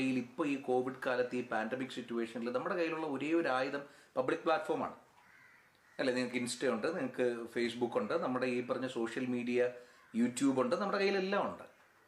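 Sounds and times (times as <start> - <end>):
man speaking: 0.0 - 5.0, 6.0 - 11.8.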